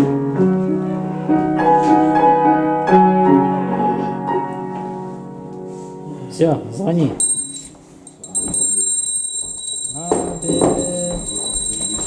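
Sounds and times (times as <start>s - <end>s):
bell ringing rapidly: 7.2s - 12.0s.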